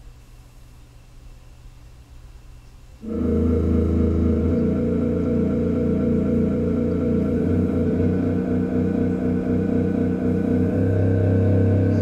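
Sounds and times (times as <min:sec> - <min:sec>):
faint low hum: 0:00.0 - 0:12.0
synthesized music: 0:03.0 - 0:12.0.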